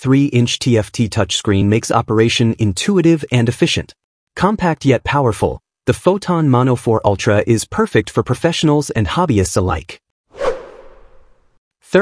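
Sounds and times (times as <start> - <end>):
whoosh swish: 10.3 - 11.6.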